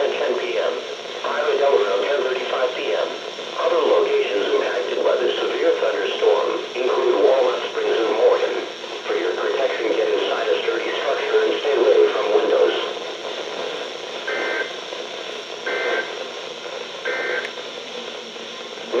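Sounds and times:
automated voice on radio speaker: 0.0 - 14.7, 17.1 - 19.0
two-tone data bursts: 14.2 - 14.8, 15.6 - 16.2, 17.0 - 17.5.

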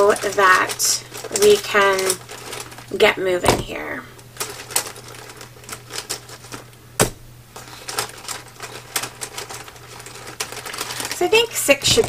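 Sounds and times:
pens clicking and clattering: 0.0 - 3.5, 4.4 - 6.7, 7.6 - 12.0.

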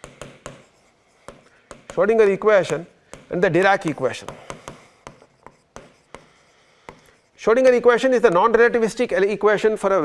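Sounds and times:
stylus tapping on screen: 0.0 - 7.2.

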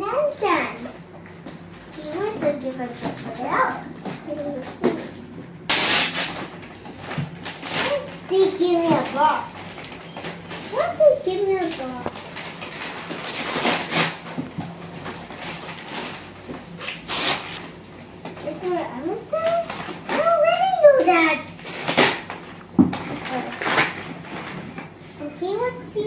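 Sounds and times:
child speaking: 0.0 - 1.0, 1.9 - 5.2, 7.7 - 9.9, 10.6 - 12.2, 18.4 - 21.6, 23.1 - 23.7, 25.2 - 26.0
wrapping paper rustling: 5.7 - 17.6, 18.3 - 26.0.

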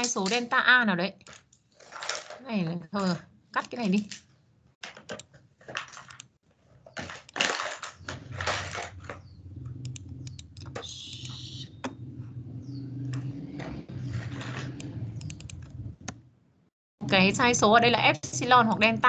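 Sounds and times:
keyboard and mouse clicks: 4.8 - 6.3, 9.8 - 12.0, 13.1 - 16.2
steady low hum: 8.1 - 19.0.

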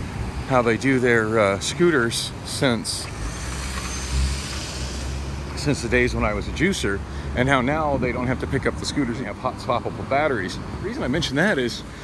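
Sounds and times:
cars driving past: 0.0 - 12.0.

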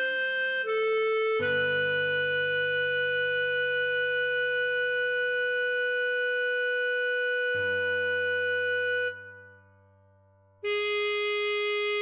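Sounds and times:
clarinet long note: 0.0 - 9.7, 10.6 - 12.0
low backing accompaniment: 0.0 - 12.0.

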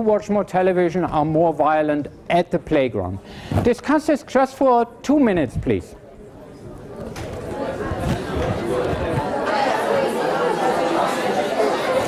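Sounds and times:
hubbub of overlapping voices: 5.5 - 12.0.

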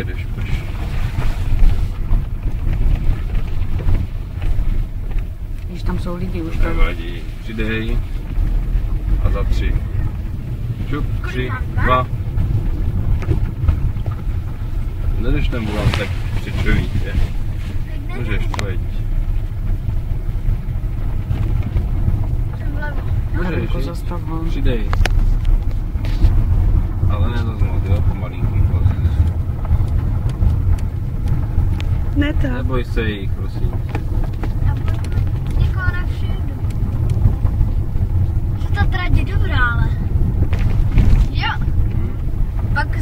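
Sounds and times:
car cabin rumble on rough track: 0.0 - 43.0.

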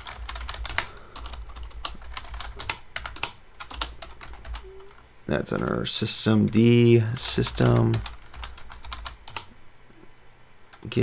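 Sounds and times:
keyboard typing clicks: 0.0 - 5.7.

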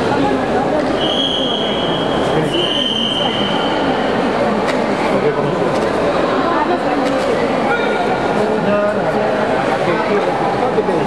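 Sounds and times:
chatter of a crowded hall: 0.0 - 11.0
referee's whistle shrill note: 1.0 - 3.7.

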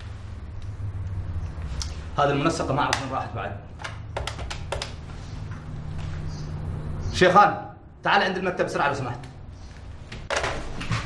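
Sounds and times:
low steady hum: 0.0 - 8.1.

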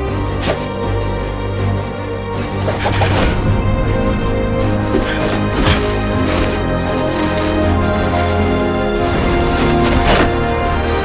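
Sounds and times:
film score sustained chords: 0.0 - 11.0.

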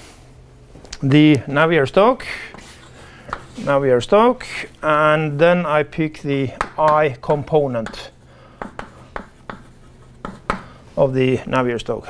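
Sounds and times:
chalk tapping and scraping: 1.8 - 4.9, 5.9 - 11.2.

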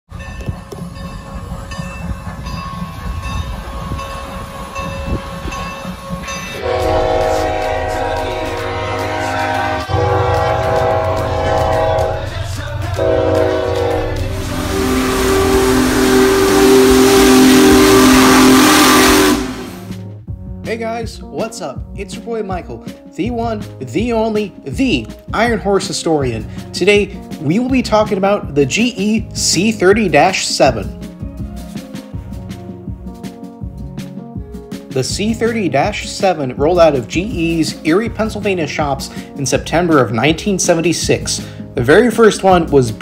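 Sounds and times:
moving train rushing: 0.1 - 20.0
train horns sounding a chord: 3.8 - 20.0.

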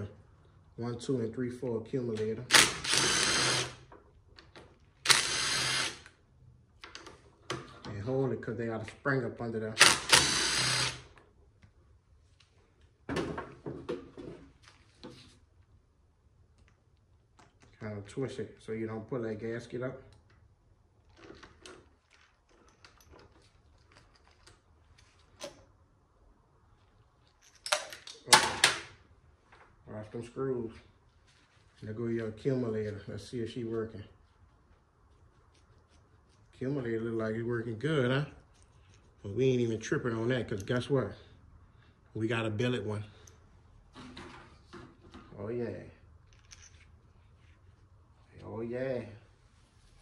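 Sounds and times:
cordless drill spinning: 2.5 - 3.8, 5.0 - 6.2, 9.8 - 11.2.

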